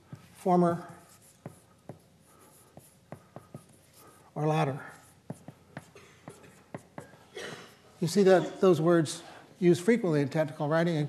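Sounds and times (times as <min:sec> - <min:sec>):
chalk tapping on blackboard: 0:00.0 - 0:04.2, 0:04.9 - 0:07.2.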